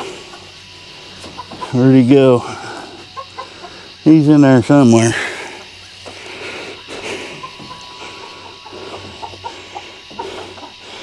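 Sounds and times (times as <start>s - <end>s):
chickens clucking: 0.0s - 11.0s
faint steady hiss: 0.0s - 11.0s.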